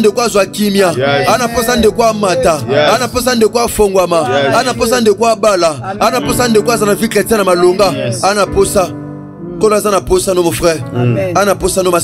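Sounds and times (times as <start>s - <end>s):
steady musical backing: 0.0s - 12.0s
person chanting rhythmically: 1.0s - 3.2s.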